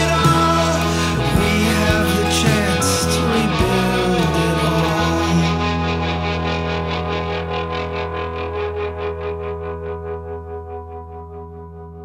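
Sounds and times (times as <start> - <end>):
pulsing guitar chord ringing: 0.0 - 12.0.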